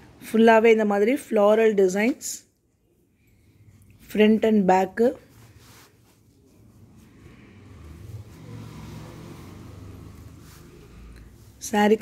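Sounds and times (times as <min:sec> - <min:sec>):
engine hum: 0:06.6 - 0:11.6.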